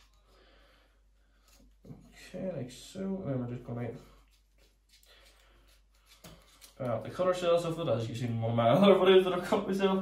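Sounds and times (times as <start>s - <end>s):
blade scraping lemon peel: 4.2s - 7.8s.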